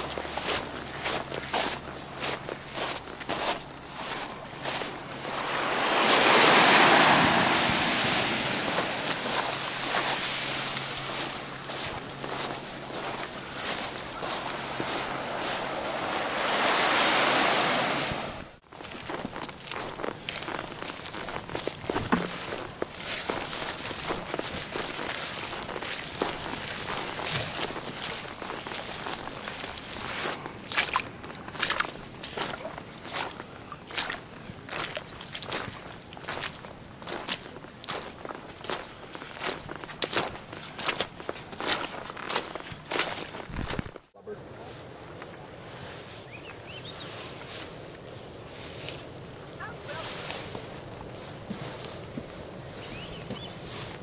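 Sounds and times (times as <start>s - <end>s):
footsteps on beach stones: 0.0s - 17.5s, 18.6s - 44.1s, 48.6s - 54.0s.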